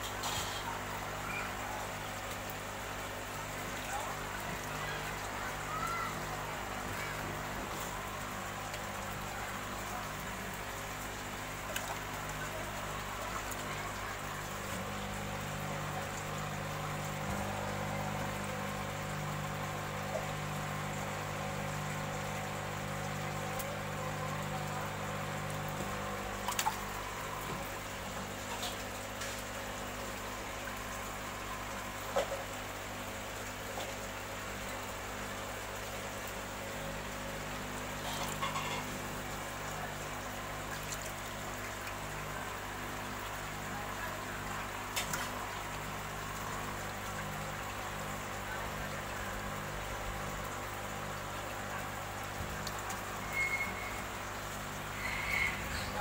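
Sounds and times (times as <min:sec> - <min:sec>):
aeration bubbling: 0:00.0 - 0:56.0
water sloshing and splashing: 0:00.0 - 0:56.0.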